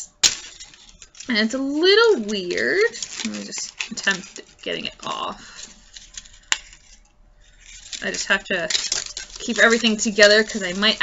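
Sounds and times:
handling sounds: 0.0 - 11.0.

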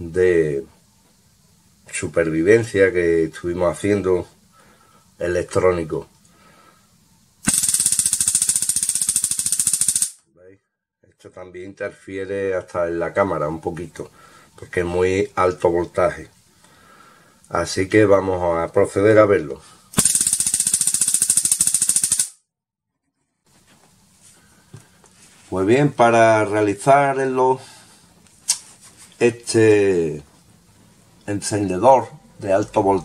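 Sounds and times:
electric sparks crackling: 7.4 - 10.2, 20.0 - 22.3.

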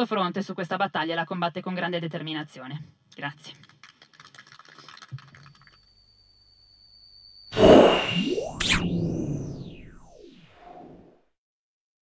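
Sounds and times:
scattered clapping: 3.5 - 5.8
whoosh sound effect: 7.6 - 10.8.

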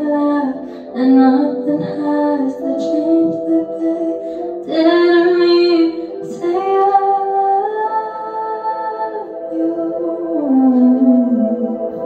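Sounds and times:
girl singing into microphone: 0.0 - 12.0.

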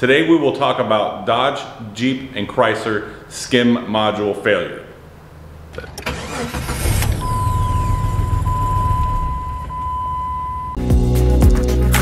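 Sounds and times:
car engine starting and running: 5.6 - 10.8
steady high-pitched beep: 7.2 - 10.8.

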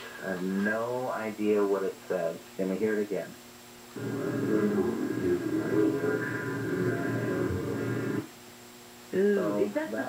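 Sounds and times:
steady hum: 0.0 - 10.0
deep slowed-down voice: 4.0 - 8.2
muffled background voices: 4.0 - 8.3.

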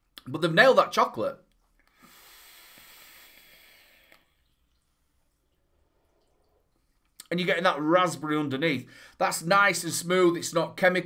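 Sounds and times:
hiss of vape draw: 2.0 - 4.3.

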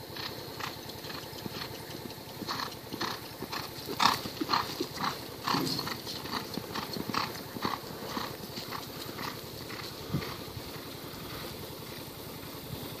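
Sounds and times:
horse galloping on dirt: 0.0 - 13.0.

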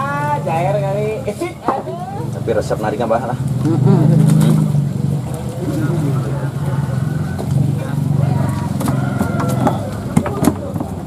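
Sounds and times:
people talking: 0.0 - 11.0
motor engine droning: 2.2 - 11.0.

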